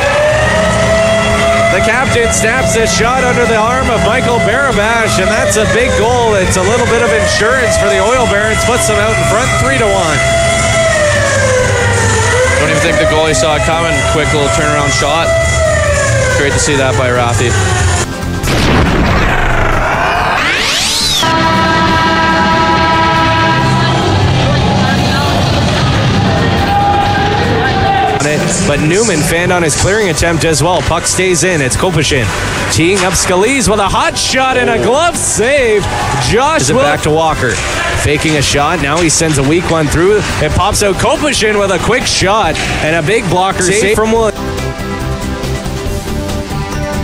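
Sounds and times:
goal horn blast: 0.0s - 15.8s, 19.6s - 26.7s
held music chord: 0.0s - 18.1s, 21.2s - 26.0s
crowd noise: 0.0s - 18.4s, 19.1s - 47.0s
rising swoosh: 18.8s - 22.7s.

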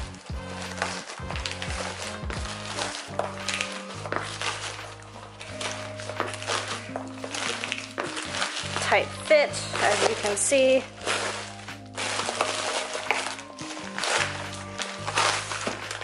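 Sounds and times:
background music low notes: 0.0s - 16.0s
plastic envelope crinkling: 0.0s - 16.0s.

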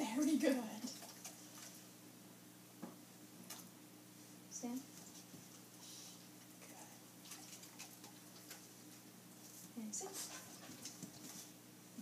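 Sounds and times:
low room hum: 0.0s - 12.0s
dogs scuffling: 7.2s - 11.6s.

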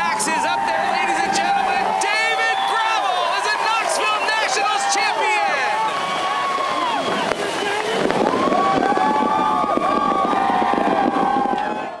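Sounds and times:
voices calling: 0.0s - 11.0s
spark fountains crackling: 1.2s - 11.8s.

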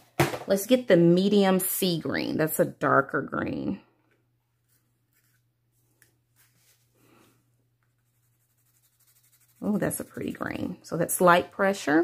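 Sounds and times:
pencil scratching on paper: 8.0s - 10.7s.

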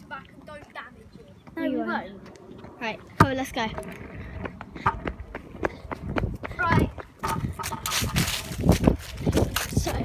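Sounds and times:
scooter wheels rumbling on paving: 0.0s - 10.0s.

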